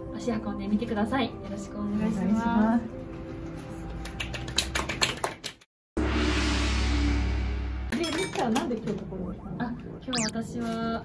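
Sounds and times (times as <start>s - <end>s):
people clapping: 3.9s - 5.7s.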